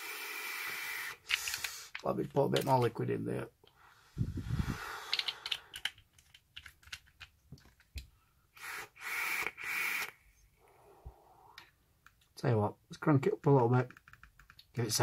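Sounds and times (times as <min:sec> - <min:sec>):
airy hisses of vaping: 0:04.1 - 0:05.4.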